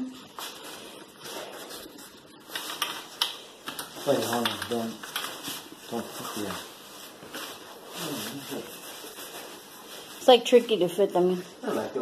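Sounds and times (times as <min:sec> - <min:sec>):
fabric rustling: 0:00.2 - 0:12.0.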